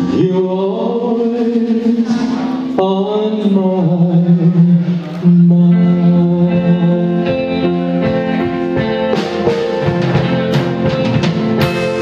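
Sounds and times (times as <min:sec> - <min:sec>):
man singing: 0:00.0 - 0:08.4
live band playing pop ballad: 0:00.0 - 0:12.0.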